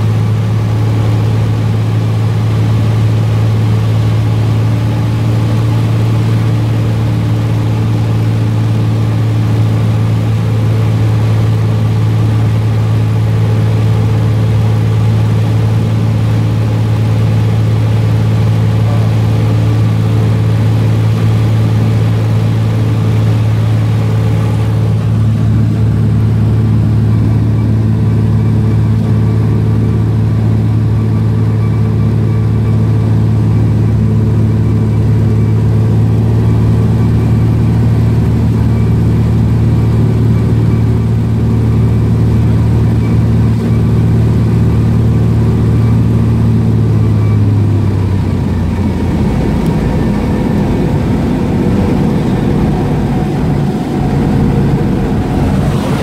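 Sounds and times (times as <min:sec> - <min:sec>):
airplane engine droning in cabin: 0:00.0 - 0:56.0.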